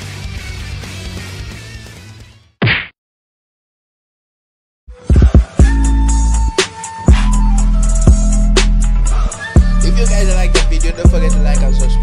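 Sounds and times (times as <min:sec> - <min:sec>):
music: 0:00.0 - 0:02.6, 0:04.9 - 0:12.0
punch sound effect: 0:02.6 - 0:03.0.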